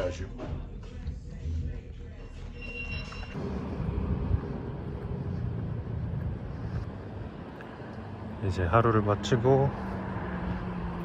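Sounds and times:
low rumble of vehicle noise: 0.0 - 11.0.

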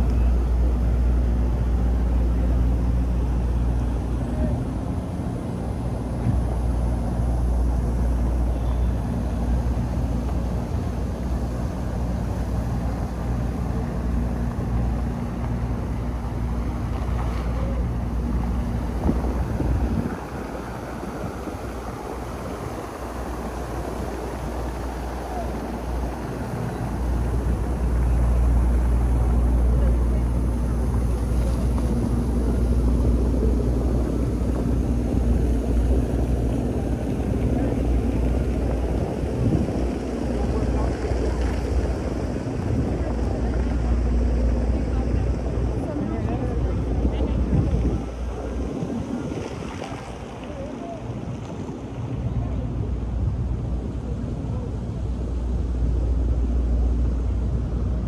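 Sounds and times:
fountain water splashing: 0.0 - 58.0
street traffic hum: 0.0 - 58.0.

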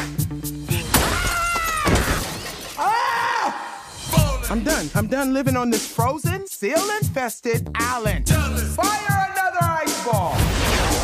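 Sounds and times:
music: 0.0 - 2.0, 2.6 - 11.0
ice smashing and shattering: 0.9 - 2.9
shards scattering: 0.9 - 2.9
character crying out: 2.8 - 3.9.

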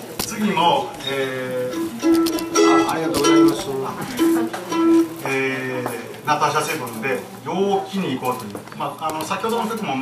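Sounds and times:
acoustic guitar plucked notes: 1.5 - 5.3.

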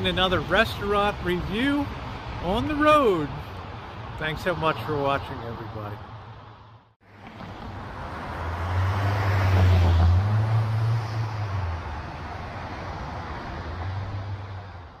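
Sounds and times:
vehicle passing on street: 0.0 - 15.0.

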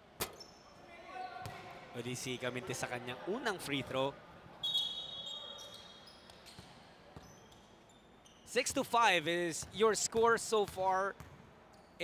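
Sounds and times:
sneakers squeaking on court: 0.2 - 0.7, 4.7 - 8.6
referee's whistle blast: 4.6 - 5.7.

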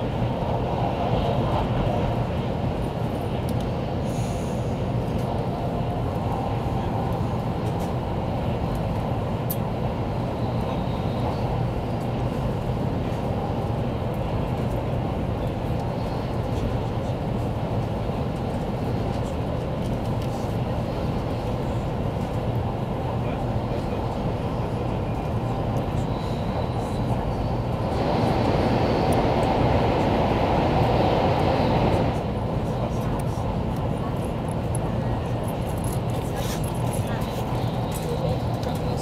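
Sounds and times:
train rumble and rush inside car: 0.0 - 39.0.

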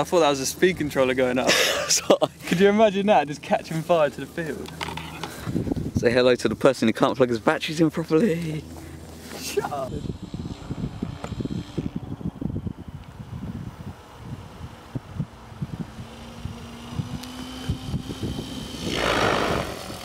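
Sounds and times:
distant rc helicopter whine: 3.4 - 5.7, 8.1 - 20.0
wind buffeting microphone: 5.3 - 6.6, 9.8 - 20.0
helicopter rotor rush: 7.5 - 20.0.

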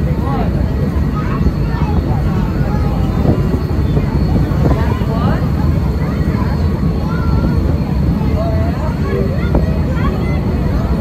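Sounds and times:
indistinct voices talking: 0.0 - 11.0
steady low rumble: 0.0 - 11.0.

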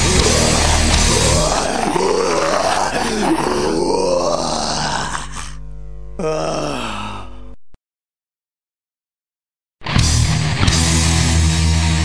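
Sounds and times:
black metal band playing: 0.0 - 4.1, 9.8 - 12.0
grunting groaning vocals: 0.0 - 5.6, 6.2 - 7.4.

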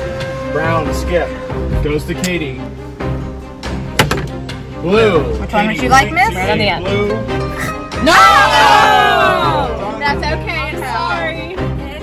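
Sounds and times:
background music: 0.0 - 12.0
die landing on a table: 4.0 - 4.3.

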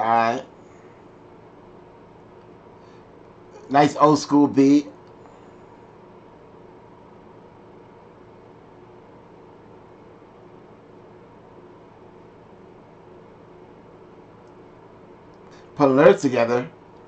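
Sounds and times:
faint electrical hum: 0.0 - 17.0
low hiss: 0.0 - 17.0.

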